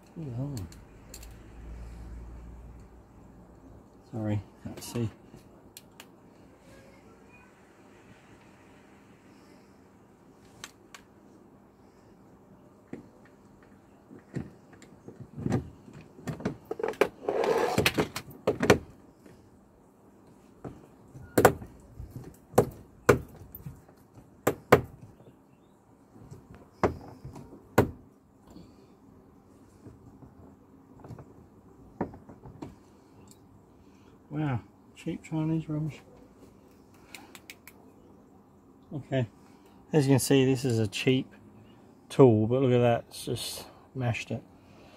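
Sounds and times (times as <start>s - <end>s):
scraping rustle: 16.6s - 18.2s.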